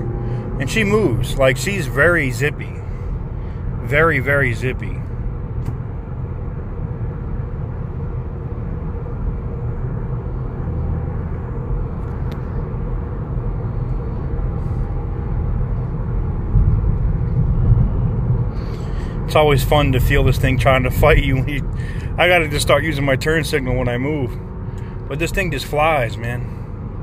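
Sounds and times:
car engine and road rumble: 0:00.0 - 0:27.0.

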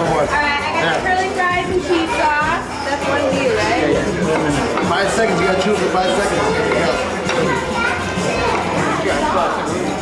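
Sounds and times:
busy room chatter: 0:00.0 - 0:10.0.

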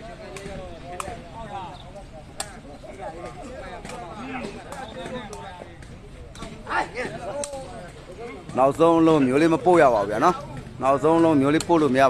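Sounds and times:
spectators chattering: 0:00.0 - 0:12.0.

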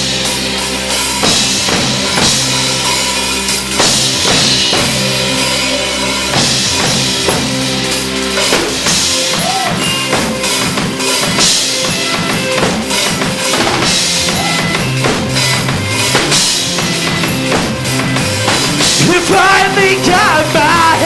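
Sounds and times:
electric guitar: 0:00.0 - 0:21.0
rock band playing: 0:00.0 - 0:21.0
bass drum and snare beat: 0:01.1 - 0:05.3, 0:06.3 - 0:21.0.

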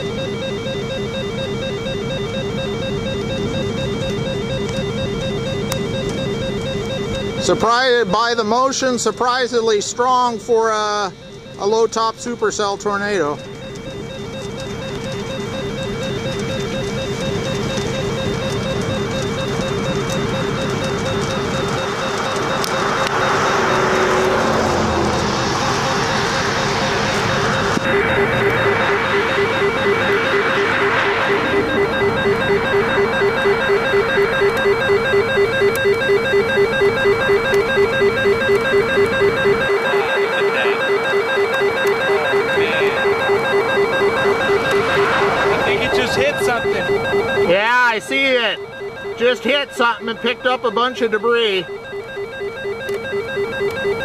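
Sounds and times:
warbling electronic alert alarm: 0:00.0 - 0:54.0
wind or road noise: 0:19.6 - 0:39.9, 0:43.2 - 0:47.5.

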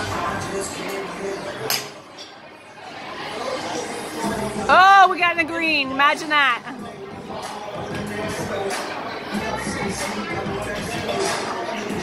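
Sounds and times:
background music: 0:00.0 - 0:02.1, 0:03.0 - 0:12.0
venue chatter: 0:00.0 - 0:12.0.

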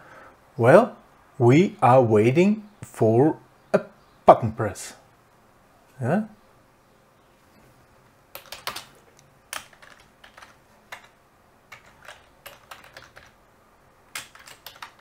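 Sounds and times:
typing on computer keyboard: 0:08.3 - 0:13.4, 0:14.1 - 0:15.0.

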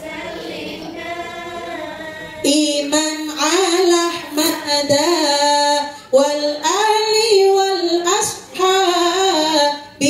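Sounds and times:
woman singing unaccompanied: 0:00.0 - 0:10.0.

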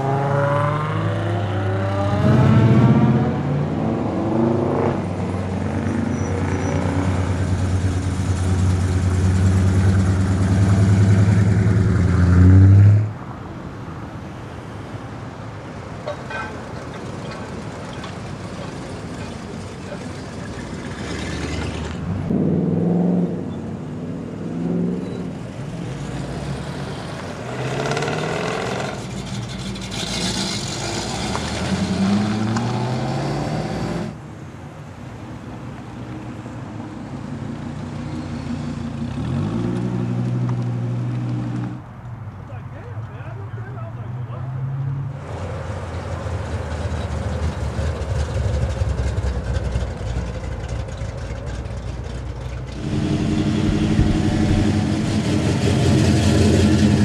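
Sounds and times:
engine revving: 0:00.0 - 0:03.5, 0:27.4 - 0:34.2, 0:52.7 - 0:57.0
car engines rolling past: 0:00.0 - 0:57.0.

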